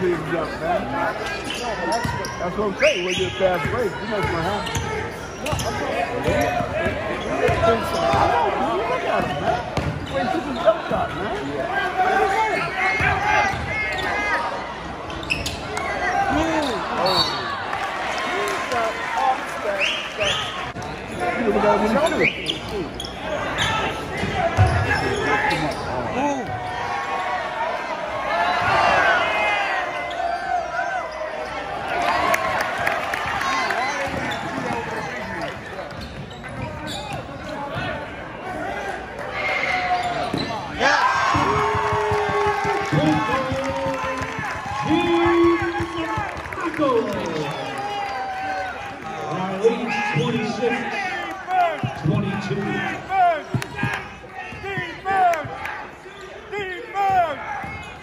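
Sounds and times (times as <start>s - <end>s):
voices talking and calling out: 0.0s - 58.0s.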